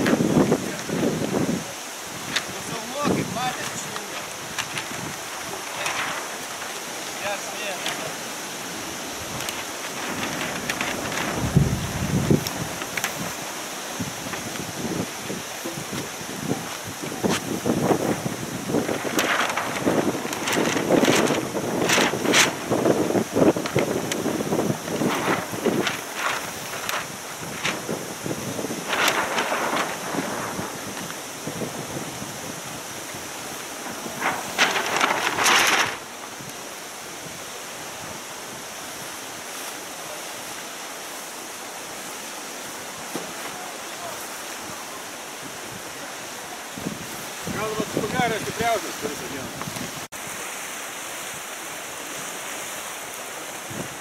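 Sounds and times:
wind buffeting microphone: 0.0 - 39.5, 42.7 - 50.2, 53.4 - 54.0
waves lapping: 0.0 - 54.0.

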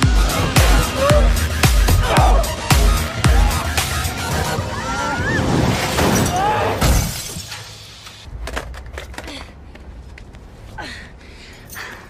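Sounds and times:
glass shattering: 5.8 - 7.7.

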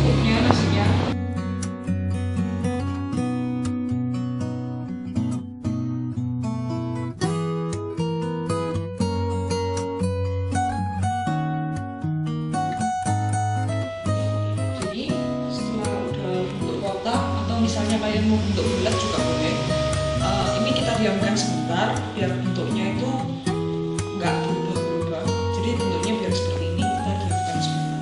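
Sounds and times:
plucked acoustic guitar melody: 0.0 - 28.0.

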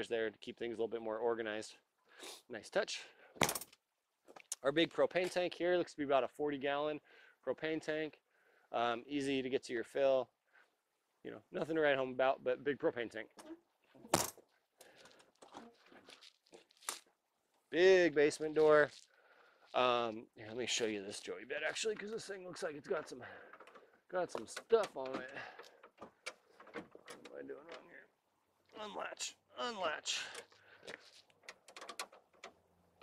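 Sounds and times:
faint handling and rustling: 13.8 - 17.7, 30.4 - 32.3
latch and handle clicking and rattling: 23.5 - 27.9, 31.4 - 32.7.

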